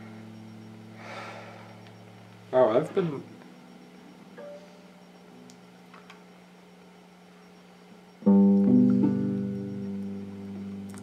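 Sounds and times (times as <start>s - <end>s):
electric guitar chord ringing: 0.0s - 1.7s, 8.2s - 11.0s
faint amplifier hum: 0.0s - 11.0s.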